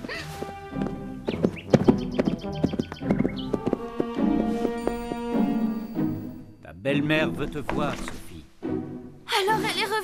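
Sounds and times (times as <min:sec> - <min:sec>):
horse hoofbeats clattering: 0:00.0 - 0:06.2
background music: 0:00.0 - 0:10.0.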